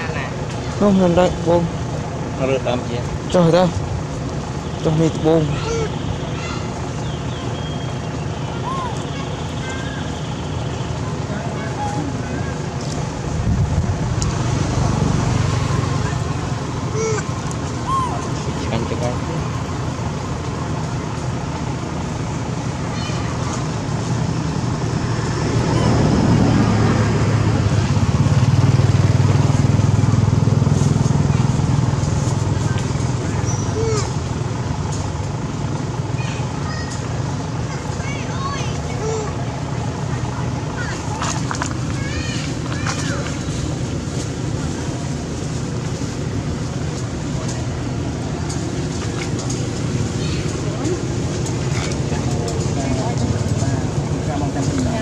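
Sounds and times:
rumble of passing vehicles: 0:00.0 - 0:55.0.

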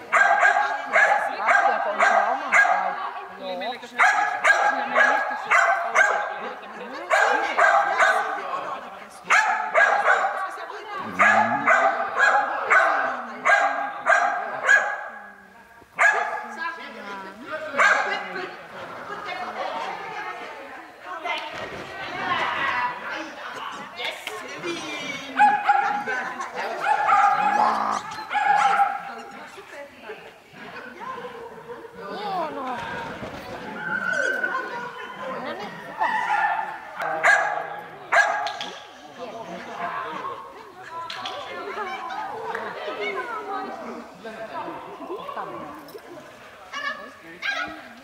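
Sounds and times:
dog barking in large hall: 0:00.0 - 0:03.2, 0:03.9 - 0:08.4, 0:09.3 - 0:16.7, 0:17.7 - 0:18.3, 0:25.3 - 0:29.4, 0:31.2 - 0:32.0, 0:33.7 - 0:38.8.

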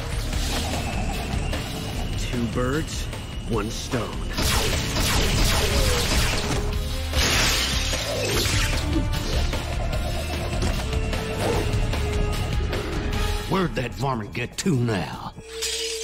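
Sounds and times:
action cartoon music: 0:00.0 - 0:16.0
glass cracking: 0:07.2 - 0:08.6.

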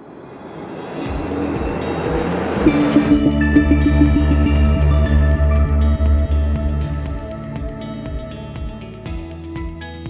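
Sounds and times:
rushing swell with rising whistle: 0:00.0 - 0:05.7
bright shimmering hit: 0:00.5 - 0:05.2
synth music with low pulse: 0:00.9 - 0:09.8.

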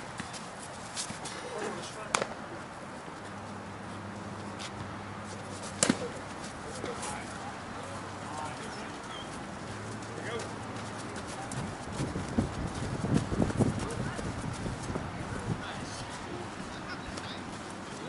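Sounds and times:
bat striking ball: 0:02.1 - 0:02.4, 0:05.8 - 0:06.2
faint distant voices: 0:05.6 - 0:18.0.

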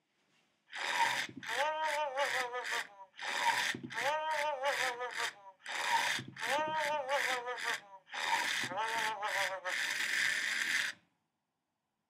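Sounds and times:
toy motor and gears whirring: 0:00.7 - 0:11.0.

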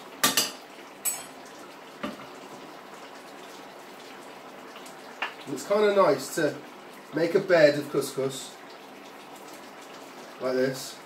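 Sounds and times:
sauce bubbling and sizzling: 0:00.0 - 0:11.0.

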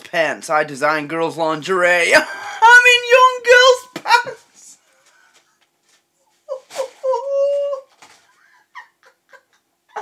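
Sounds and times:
person laughing high-pitched: 0:06.5 - 0:10.0.

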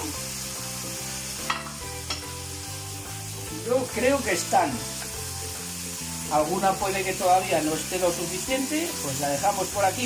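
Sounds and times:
faint background music: 0:00.0 - 0:10.0
fish sizzling in a pan: 0:00.0 - 0:10.0.

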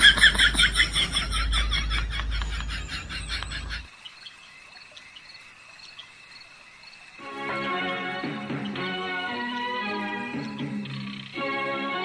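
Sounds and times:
laughter: 0:00.0 - 0:03.9
crickets chirring: 0:00.0 - 0:11.7.

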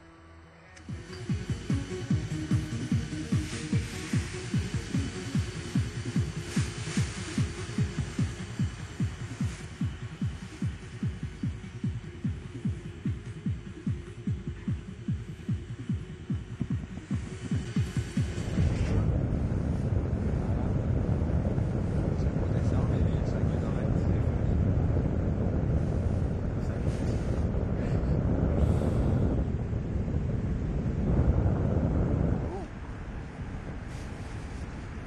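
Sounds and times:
music with pulsing beat: 0:00.8 - 0:19.0
wind rushing over microphone: 0:00.9 - 0:35.0.

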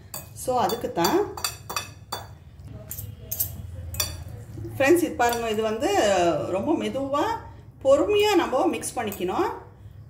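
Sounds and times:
metal spoon clinking glass bowl: 0:00.0 - 0:04.4, 0:05.2 - 0:05.6.

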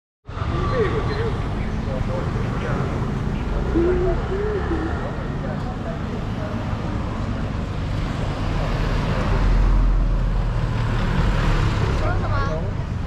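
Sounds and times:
road traffic: 0:00.2 - 0:13.0
vehicle passing close: 0:00.3 - 0:13.0.

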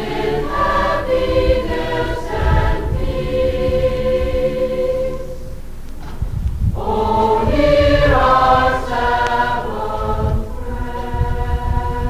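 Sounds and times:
chorus singing sustained chords: 0:00.0 - 0:06.0, 0:06.6 - 0:12.0.

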